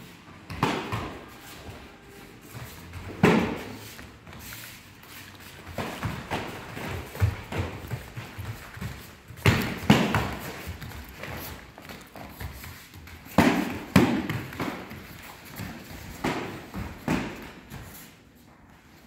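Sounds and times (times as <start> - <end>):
bare feet thudding on mats: 0.5 - 18.2.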